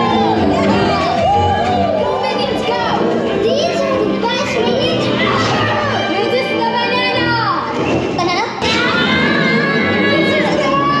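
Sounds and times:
soundtrack music: 0.0 - 11.0
high-pitched cartoon voices chattering: 2.3 - 11.0.

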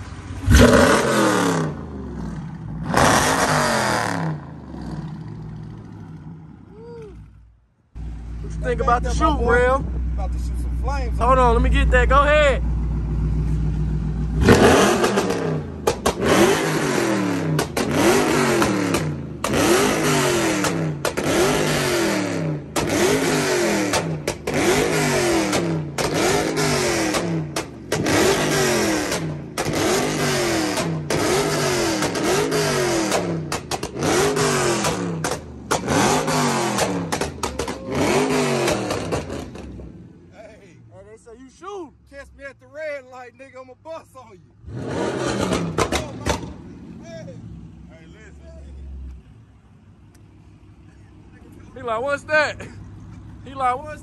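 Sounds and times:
car exhaust revving: 0.0 - 6.7, 8.0 - 40.3, 44.6 - 47.9.

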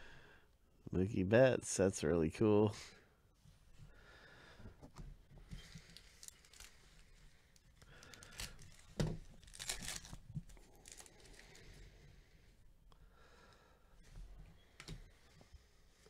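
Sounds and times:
foil wrapper crinkling and tearing: 5.8 - 11.6.

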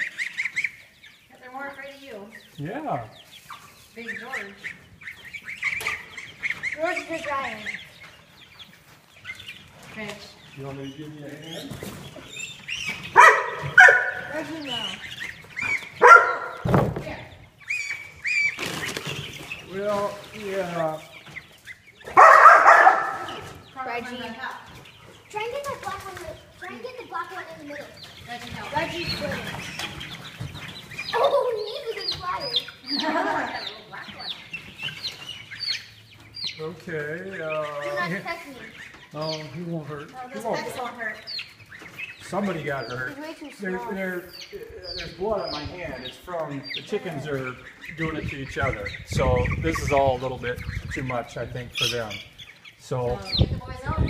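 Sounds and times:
chicks peeping: 0.0 - 54.0.

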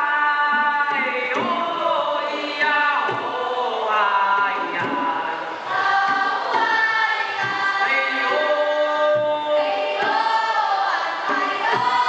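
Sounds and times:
young voices singing folk song: 0.0 - 12.0.

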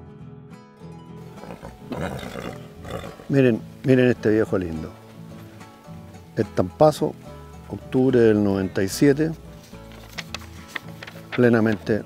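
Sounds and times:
background music: 0.0 - 12.0
horse calling: 1.2 - 3.6.

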